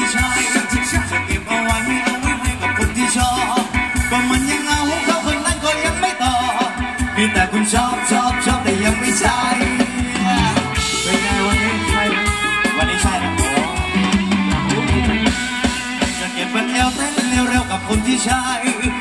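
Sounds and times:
band melody: 0:00.0 - 0:19.0
drum kit beat: 0:00.0 - 0:19.0
person singing: 0:00.0 - 0:19.0.

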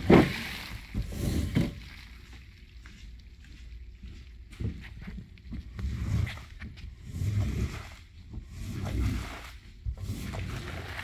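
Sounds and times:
squeegee swishing on wet rug: 0:05.8 - 0:11.0.

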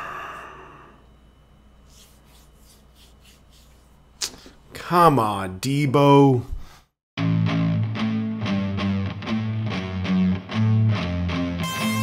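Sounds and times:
sharp huff of breath: 0:00.0 - 0:01.0
man breathing: 0:00.0 - 0:01.1, 0:06.6 - 0:07.0.

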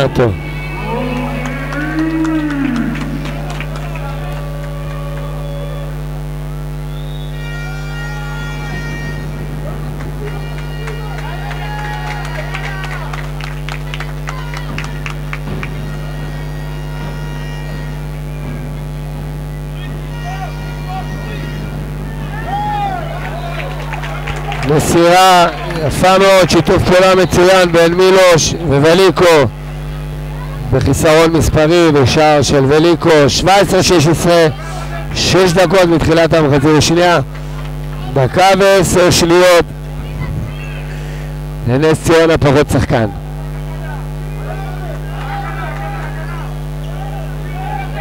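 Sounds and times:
crowd voices: 0:00.0 - 0:48.0
low electrical hum: 0:00.0 - 0:48.0.

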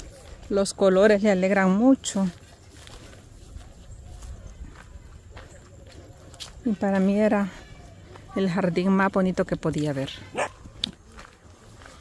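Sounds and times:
dog barking: 0:10.3 - 0:10.6.

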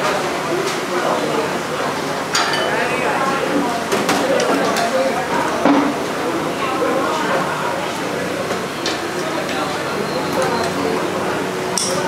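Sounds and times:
murmur of voices: 0:00.0 - 0:12.0
clinks of crockery and utensils: 0:02.3 - 0:02.9, 0:11.8 - 0:12.0.

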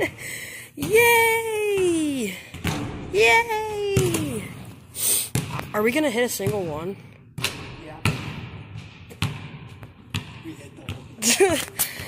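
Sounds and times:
basketball bouncing on hardwood: 0:01.8 - 0:11.3.

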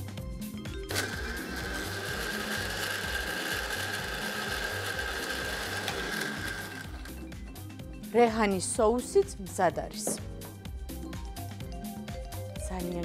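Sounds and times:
blender whining: 0:00.9 - 0:07.6.

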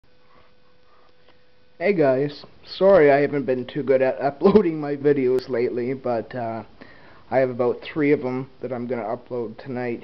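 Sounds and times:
soft faint noises: 0:00.0 - 0:03.9
faint steady hum: 0:00.0 - 0:10.0.

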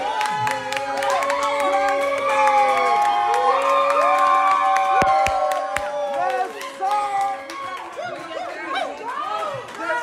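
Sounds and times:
audience cheering and whooping: 0:00.0 - 0:09.0
people clapping: 0:00.0 - 0:10.0.

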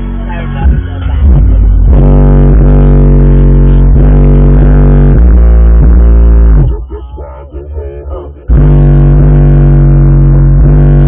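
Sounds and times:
loud bass-heavy music from subwoofers: 0:00.0 - 0:11.0.

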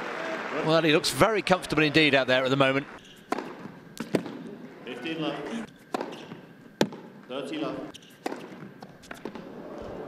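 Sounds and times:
tennis ball struck by rackets: 0:03.0 - 0:04.5, 0:05.9 - 0:07.2, 0:07.9 - 0:09.5.

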